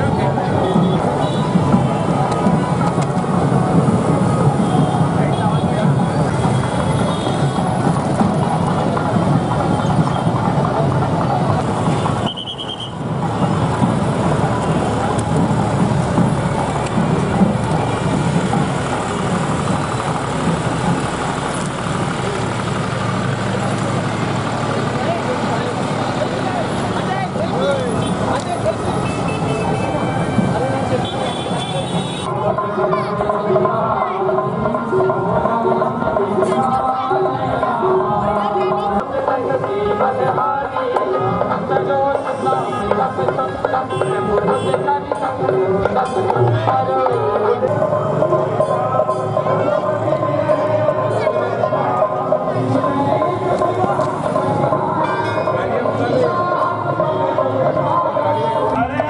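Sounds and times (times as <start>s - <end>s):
crowd voices: 0.0s - 59.0s
motorcycle and rickshaw engines: 0.0s - 59.0s.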